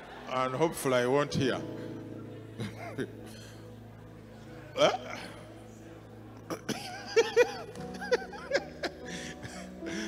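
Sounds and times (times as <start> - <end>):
background keyboard music: 0.0 - 10.0
man laughing: 6.9 - 9.6.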